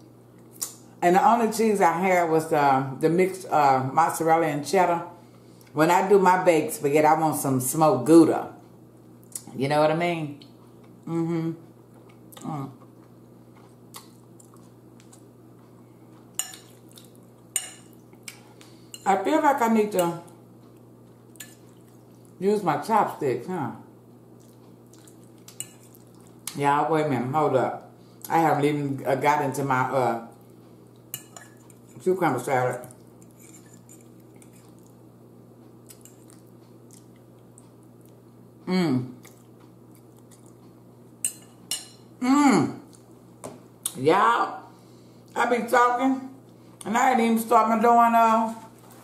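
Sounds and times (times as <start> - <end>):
low steady hum: 0.0 - 49.0
person chewing food: 11.8 - 18.9, 20.3 - 22.4, 24.3 - 26.5, 32.8 - 38.3, 39.2 - 42.1
fork scraping a plate: 31.2 - 32.0, 33.2 - 34.8.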